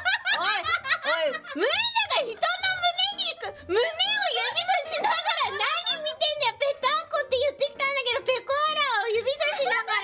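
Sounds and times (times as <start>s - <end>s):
women laughing and giggling: 0.0s - 1.9s, 4.4s - 6.0s
excited talk: 0.1s - 10.0s.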